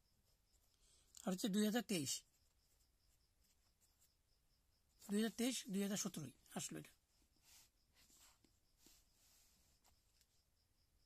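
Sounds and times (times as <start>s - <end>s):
person speaking: 1.2s - 2.3s, 5.0s - 7.0s.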